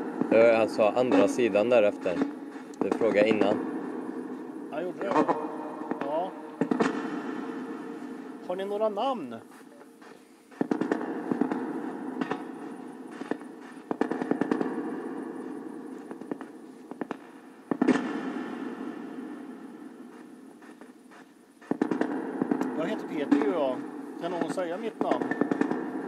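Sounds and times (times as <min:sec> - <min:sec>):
radio static hiss: 0:00.0 - 0:18.1, 0:19.0 - 0:26.0
rapid radio clicks: 0:05.0 - 0:07.0, 0:10.0 - 0:12.4, 0:13.1 - 0:14.8, 0:20.1 - 0:22.8.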